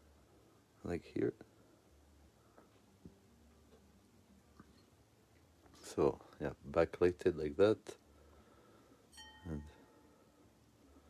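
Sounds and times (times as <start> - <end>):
short chime: 9.1 - 10.1.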